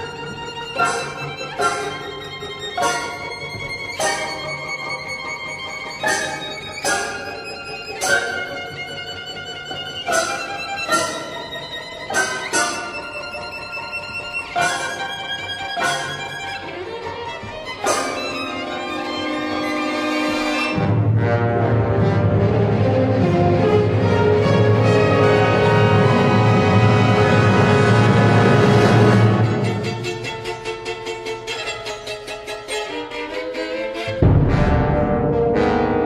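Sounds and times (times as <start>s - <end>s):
solo violin playing: 0.0s - 20.9s, 23.2s - 34.2s
orchestral accompaniment: 0.0s - 36.0s.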